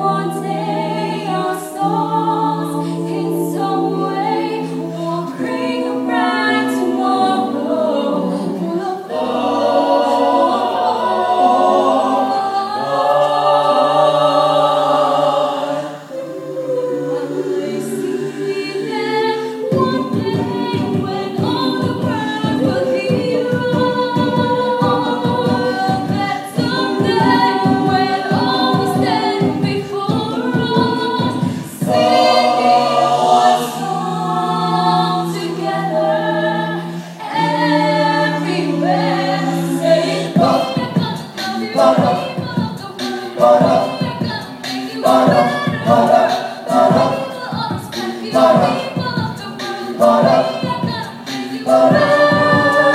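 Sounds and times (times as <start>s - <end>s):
a cappella group singing in harmony: 0.0s - 52.9s
percussive beat: 19.6s - 34.0s, 39.3s - 52.9s.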